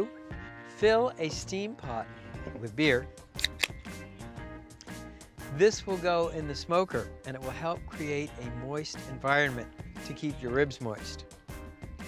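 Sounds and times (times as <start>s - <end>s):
background music: 0.0s - 12.0s
beer can snapped open: 3.4s - 3.8s.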